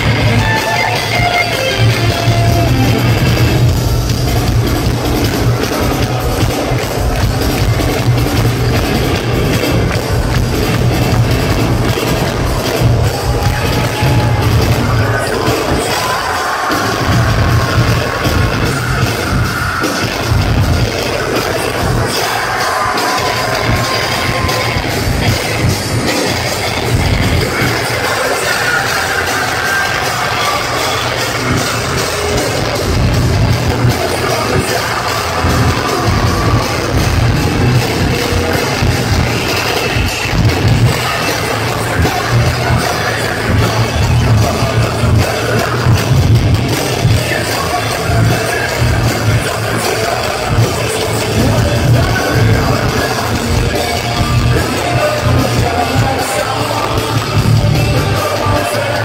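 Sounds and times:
electric guitars: 0.0 - 59.0
lead vocal singing: 0.0 - 59.0
pounding drum beat: 0.0 - 59.0.

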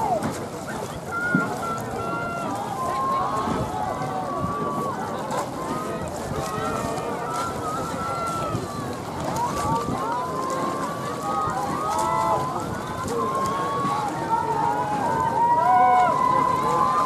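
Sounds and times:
crowd babble: 0.0 - 17.0.

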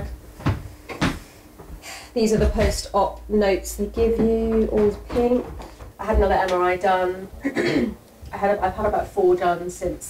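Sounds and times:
short knocks: 2.2 - 6.6.

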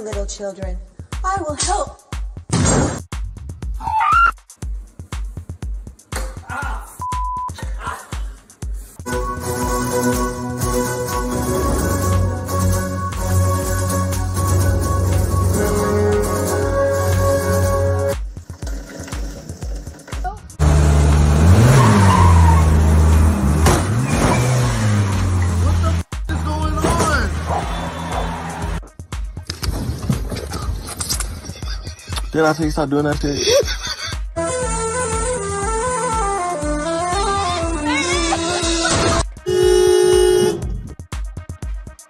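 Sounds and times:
music: 0.0 - 21.4, 24.8 - 42.0
vehicle engine revving: 18.8 - 28.8
car horn honk: 38.3 - 40.8.

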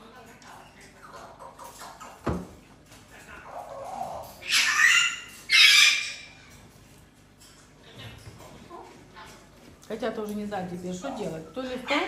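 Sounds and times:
parrot squawking: 3.5 - 6.6.

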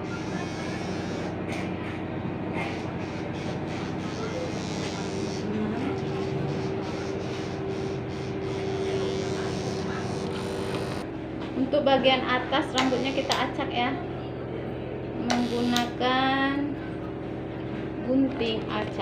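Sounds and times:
electric hair clipper humming: 0.0 - 1.4, 2.8 - 11.0, 12.8 - 13.5, 15.3 - 16.0.

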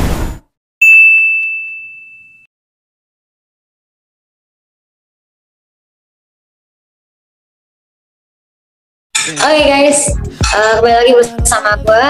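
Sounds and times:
bright ringing ding: 0.8 - 2.5.

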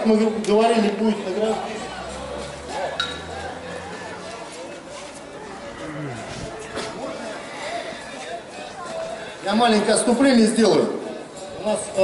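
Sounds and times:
indistinct voices outdoors: 0.0 - 12.0.

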